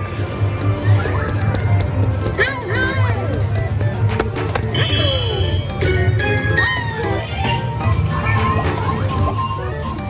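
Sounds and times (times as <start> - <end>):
playful ride music from speaker: 0.0 - 10.0.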